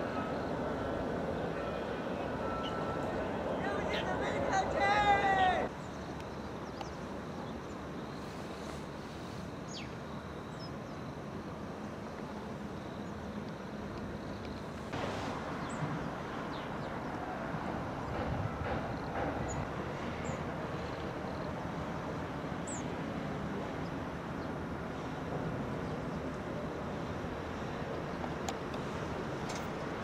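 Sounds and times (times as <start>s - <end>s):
distant traffic rumble: 0.0s - 30.0s.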